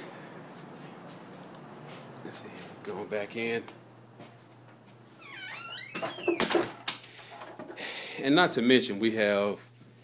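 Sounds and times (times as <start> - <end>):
wooden door hinges squeaking: 5.2 - 6.9.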